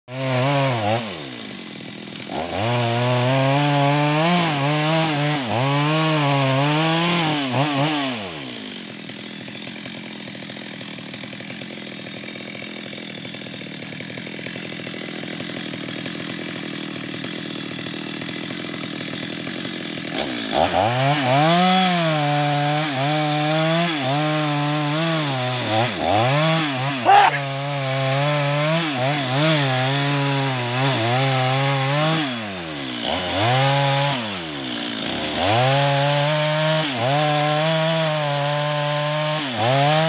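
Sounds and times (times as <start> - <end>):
chainsaw cutting wood: 0.1 - 40.0
chainsaw idling: 0.1 - 40.0.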